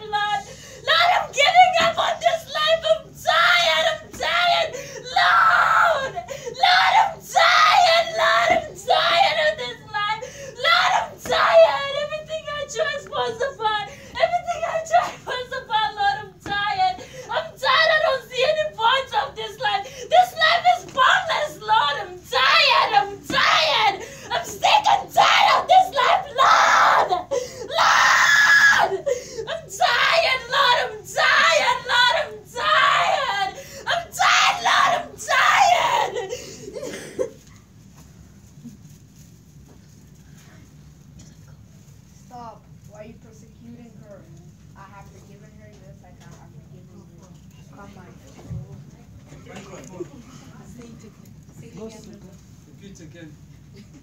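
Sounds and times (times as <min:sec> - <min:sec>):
woman screaming and wailing: 0:00.1 - 0:12.1, 0:16.8 - 0:36.4.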